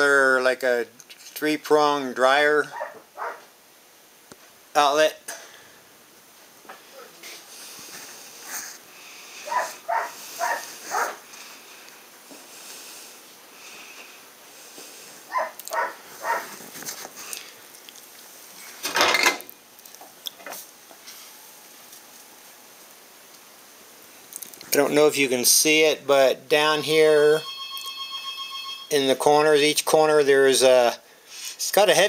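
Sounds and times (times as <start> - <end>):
dog barking: 2.7 - 3.5, 9.4 - 11.2, 15.3 - 16.5.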